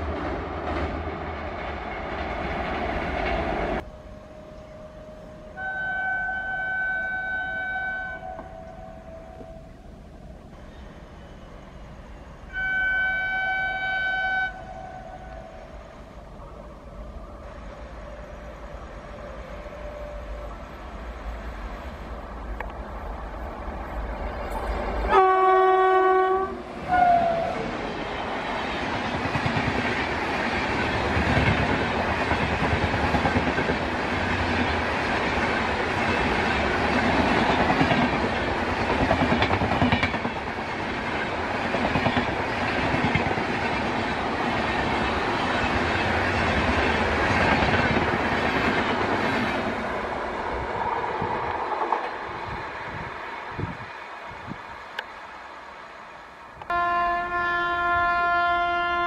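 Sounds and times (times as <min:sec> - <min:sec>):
rush of passing train coaches: 0:00.0 - 0:59.0
locomotive air horn: 0:03.8 - 0:09.8, 0:12.4 - 0:16.0, 0:18.1 - 0:20.8, 0:25.1 - 0:27.6, 0:56.7 - 0:59.0
wheels clickety-clack: 0:28.7 - 0:49.7.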